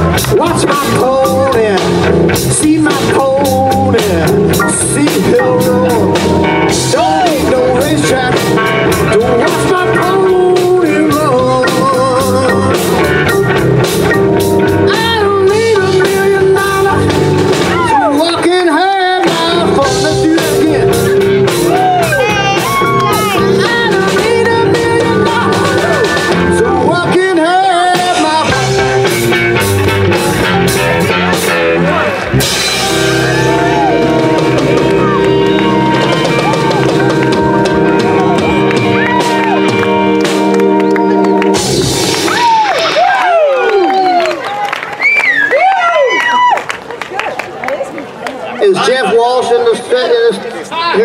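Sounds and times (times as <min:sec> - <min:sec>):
drum kit beat: 0:00.0 - 0:43.5
bending lead guitar line: 0:00.0 - 0:44.3
electric guitars: 0:00.0 - 0:44.6
live blues band playing: 0:00.0 - 0:45.0.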